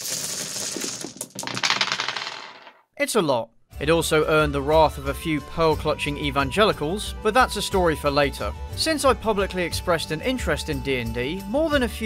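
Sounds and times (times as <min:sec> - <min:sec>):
dice clattering: 0:00.0 - 0:02.8.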